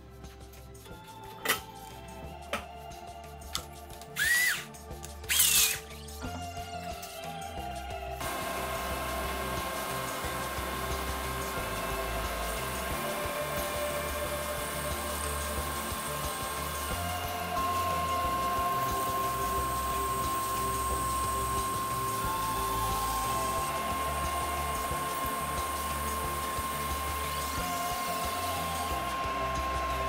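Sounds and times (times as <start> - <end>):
table saw motor whine: 4.1 - 4.7, 5.3 - 5.9, 8.2 - 30.0.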